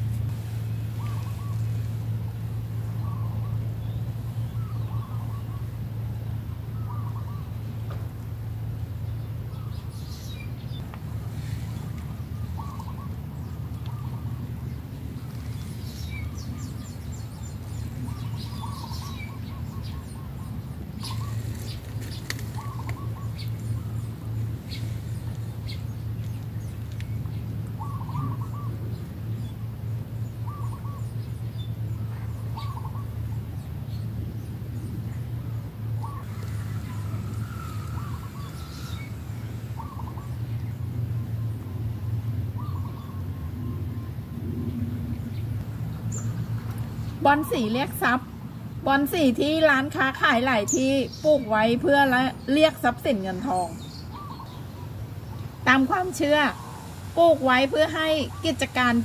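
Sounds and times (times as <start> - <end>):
steady low hum: 0.0 - 59.0
birds chirping and calling: 0.7 - 5.9, 6.7 - 8.0, 9.0 - 34.1, 34.8 - 42.0, 42.6 - 44.2, 48.9 - 59.0.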